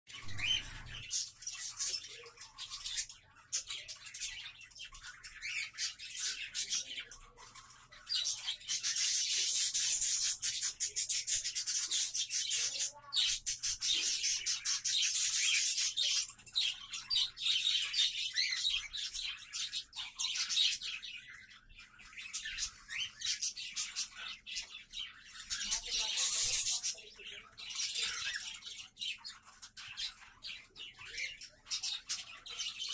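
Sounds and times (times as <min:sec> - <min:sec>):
cockatiels chirping: 0:00.1 - 0:32.9.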